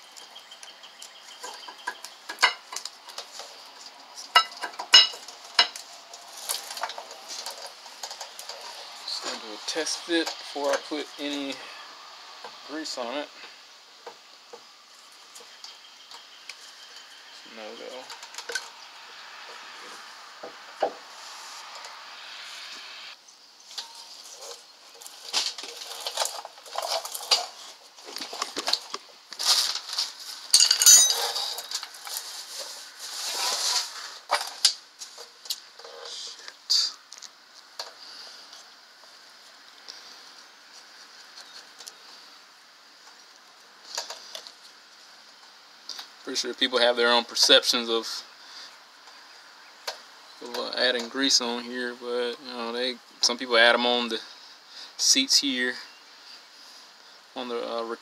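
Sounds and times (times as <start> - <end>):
brake pads clinking and scraping: 23.7 - 36.2.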